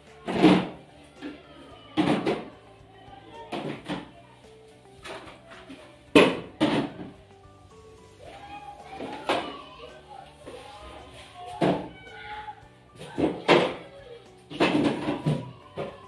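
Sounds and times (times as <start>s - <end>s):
quiet background music: 0.0s - 16.0s.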